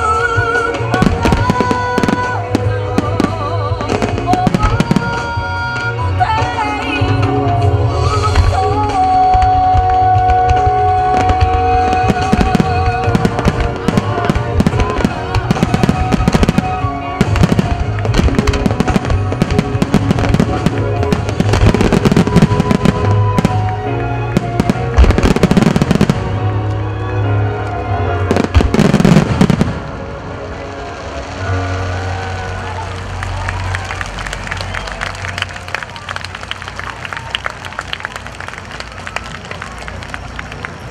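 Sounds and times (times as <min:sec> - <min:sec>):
fireworks bursting: 0:00.0 - 0:06.6, 0:08.2 - 0:26.6, 0:28.3 - 0:35.5
loud music: 0:00.0 - 0:35.4.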